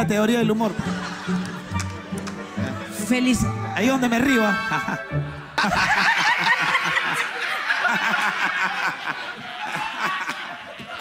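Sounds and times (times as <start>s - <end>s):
people laughing: 0.6s - 3.1s, 4.2s - 11.0s.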